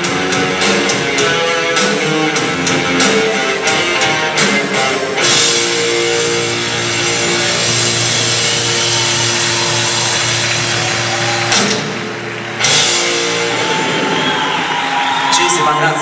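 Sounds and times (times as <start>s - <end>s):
live rock band playing: 0.0s - 15.8s.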